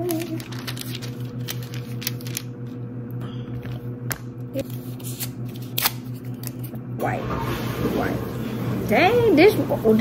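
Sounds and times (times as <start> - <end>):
paper rustling and crinkling: 0.0 - 2.8, 4.6 - 6.7.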